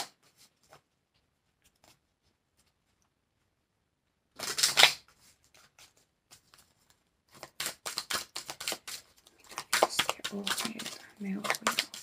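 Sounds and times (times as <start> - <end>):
cards rustling: 4.4 - 12.0.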